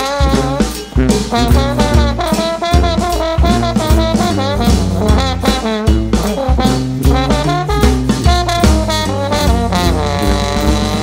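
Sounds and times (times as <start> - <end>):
brass band playing blues: 0.0 - 11.0.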